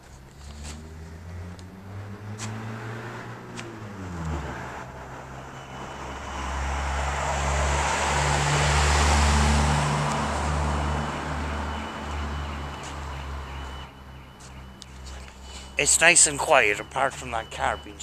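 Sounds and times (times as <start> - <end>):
vehicle driving past: 0.4 - 14.4.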